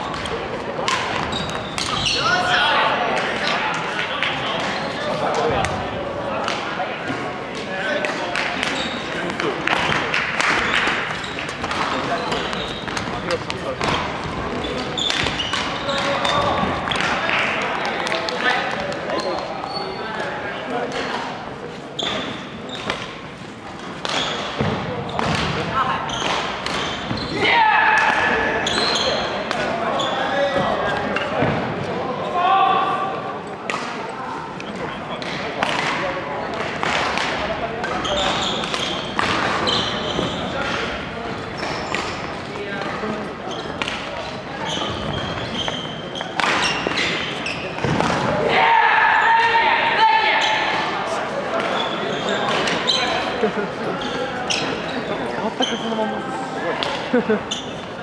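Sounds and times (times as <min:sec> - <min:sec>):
shoe squeaks: 0:01.2 - 0:02.4, 0:08.7 - 0:09.3, 0:10.7 - 0:13.4, 0:14.5 - 0:16.6, 0:19.1 - 0:20.2, 0:22.0 - 0:23.0, 0:24.2 - 0:25.2, 0:26.0 - 0:27.4, 0:28.6 - 0:29.3, 0:29.9 - 0:30.5, 0:38.0 - 0:40.6, 0:41.5 - 0:42.2, 0:43.4 - 0:47.9, 0:51.7 - 0:56.0, 0:57.4 - 0:58.0
voices talking: 0:24.1 - 0:58.0.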